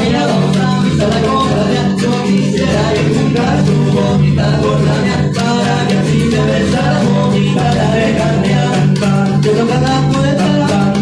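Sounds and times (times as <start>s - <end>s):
small drum: 0.0s - 11.0s
strummed acoustic guitars: 0.0s - 11.0s.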